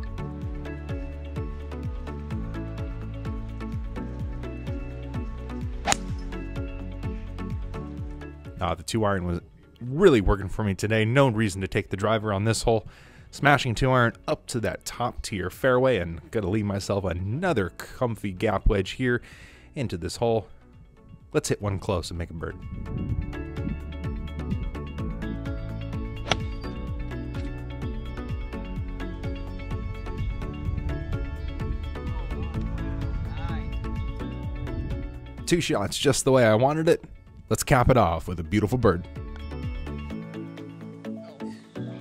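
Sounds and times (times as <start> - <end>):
background music with steady beat: 0.0 - 10.8, 22.1 - 37.5, 38.3 - 42.0
golf club striking ball: 5.8 - 6.4, 26.2 - 26.8.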